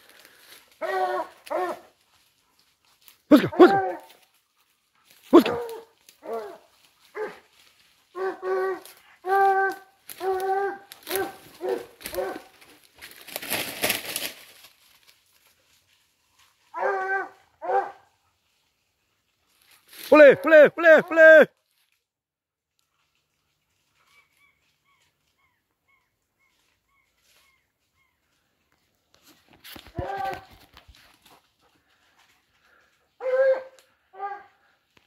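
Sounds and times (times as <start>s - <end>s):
brush crackling underfoot: 0.0s - 20.6s, 21.6s - 35.0s
hunting dog baying: 0.7s - 12.8s, 16.7s - 18.4s, 29.9s - 34.8s.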